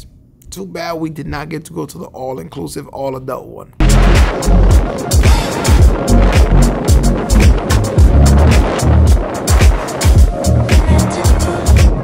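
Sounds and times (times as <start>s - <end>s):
sliding deep bass notes: 3.8s - 12.0s.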